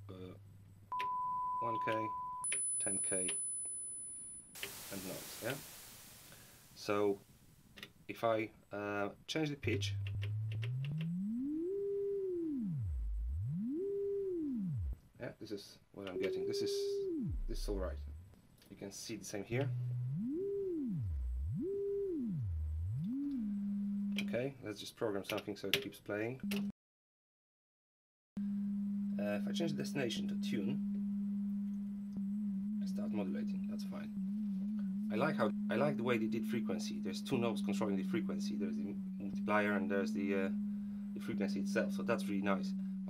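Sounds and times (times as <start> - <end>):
sine tone sweeping in pitch: 0.9 - 4.6, 9.6 - 15.0, 16.1 - 18.2, 19.6 - 24.4, 28.4 - 43.0.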